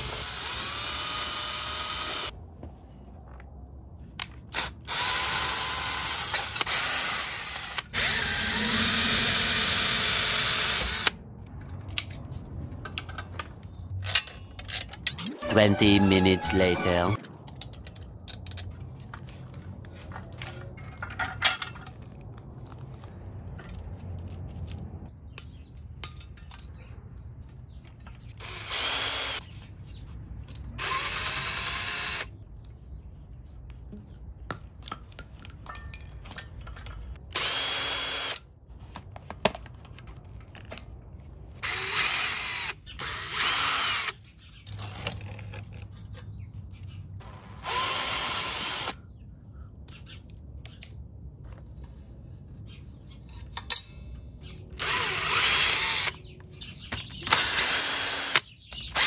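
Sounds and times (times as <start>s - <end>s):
cordless drill spinning: 0.0s - 2.3s, 4.5s - 11.1s, 28.4s - 29.4s, 30.8s - 32.3s, 37.4s - 38.4s, 41.6s - 44.1s, 47.2s - 49.0s, 54.8s - 56.2s, 57.2s - 59.0s
parts clicking and rattling: 11.4s - 15.4s, 17.2s - 22.4s, 23.4s - 28.5s, 34.5s - 37.5s.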